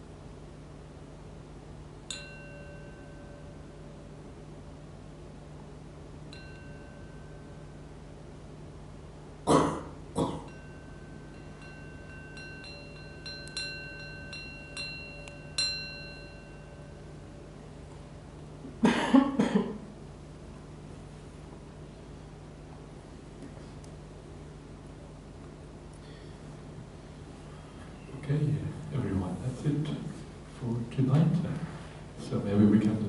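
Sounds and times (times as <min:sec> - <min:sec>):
small meditation bell strikes: 0:02.1 - 0:04.2, 0:06.3 - 0:08.2, 0:10.4 - 0:18.2
person coughing: 0:09.5 - 0:10.5, 0:18.8 - 0:19.8.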